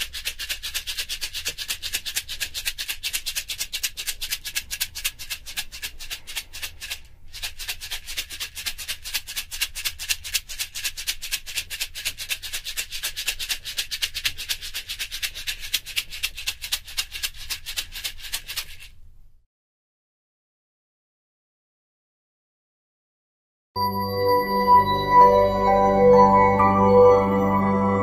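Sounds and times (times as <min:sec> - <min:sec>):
hand shaker rattling: 0:00.0 - 0:19.0.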